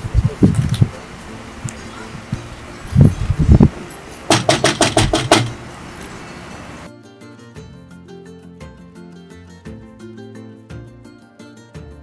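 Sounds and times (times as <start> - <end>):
knocking on door: 4.3 - 5.6.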